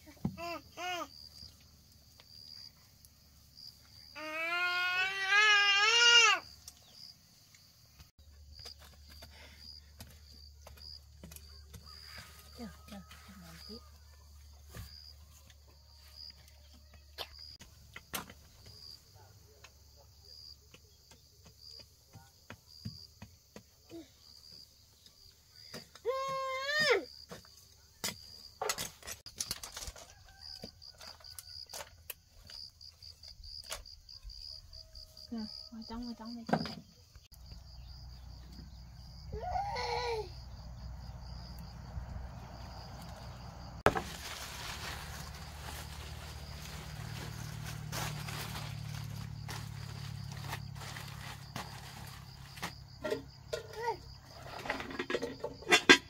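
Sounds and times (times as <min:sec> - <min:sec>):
insects chirring: 0:00.3 - 0:56.0
baby crying: 0:04.2 - 0:06.4, 0:39.3 - 0:40.3.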